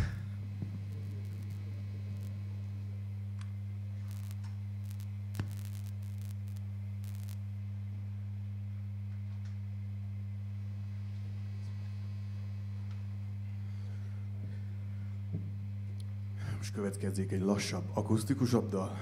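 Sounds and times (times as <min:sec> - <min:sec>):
electrical mains hum: 0:00.0 - 0:19.0.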